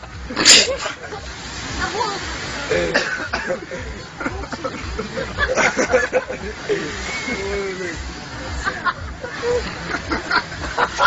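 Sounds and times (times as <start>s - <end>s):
people talking: 0.5s - 10.3s.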